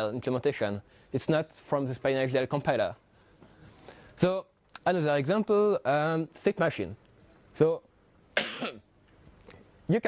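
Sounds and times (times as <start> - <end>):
man coughing: 8.4 - 8.9.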